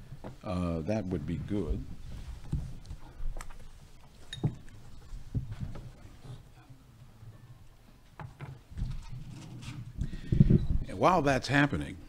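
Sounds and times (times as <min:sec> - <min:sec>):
man speaking: 0:00.4 - 0:01.9, 0:10.8 - 0:12.0.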